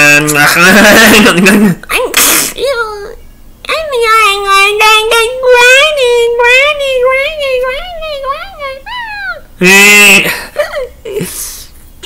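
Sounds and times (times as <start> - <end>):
breathy hiss: 10.2 - 12.0.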